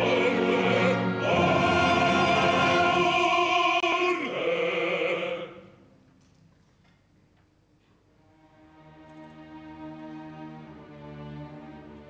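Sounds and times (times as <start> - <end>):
operatic bass voice singing: 0.0 - 5.6.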